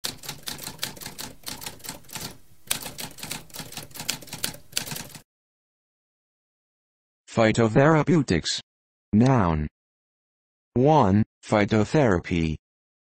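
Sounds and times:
typewriter typing: 0.0 - 5.2.

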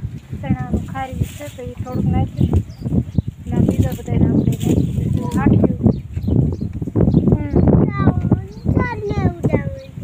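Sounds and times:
woman talking: 0.4 - 2.6, 3.4 - 5.9, 7.3 - 8.3.

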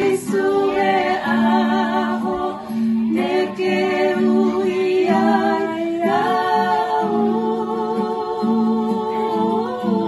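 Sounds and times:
recorded gospel music: 0.0 - 10.0
women singing gospel: 0.0 - 10.0.

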